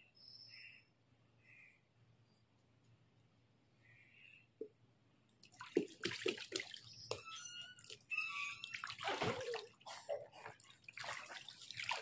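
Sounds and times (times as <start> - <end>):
water splashing in paddling pool: 5.4 - 12.0.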